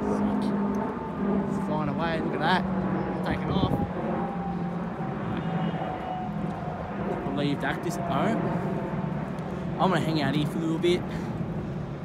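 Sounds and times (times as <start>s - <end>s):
jet airliner engine rumble: 0.0s - 12.0s.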